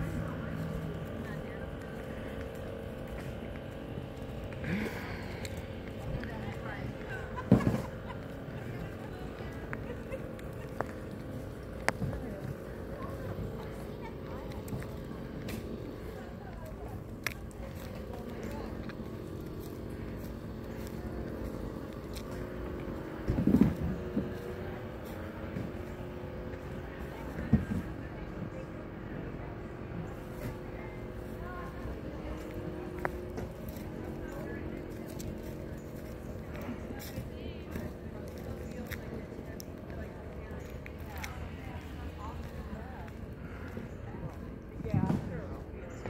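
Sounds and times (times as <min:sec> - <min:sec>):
faint indistinct voices: 0:00.0 - 0:46.0
steady low hum: 0:00.0 - 0:46.0.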